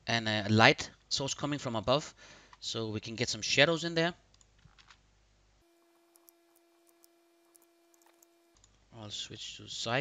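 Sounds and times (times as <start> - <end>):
faint electronic tone: 5.6 - 8.6
computer mouse clicks: 5.9 - 8.8.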